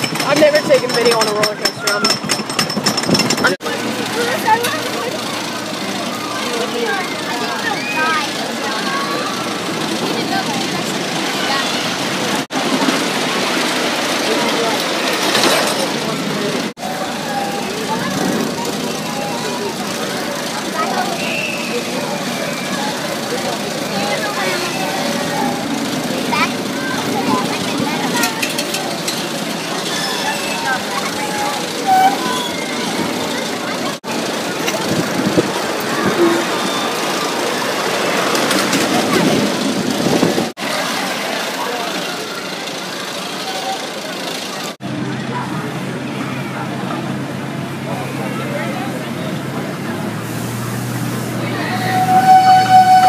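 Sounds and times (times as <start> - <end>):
chatter of voices: 0.0 - 53.0
ride machinery running: 0.0 - 53.0.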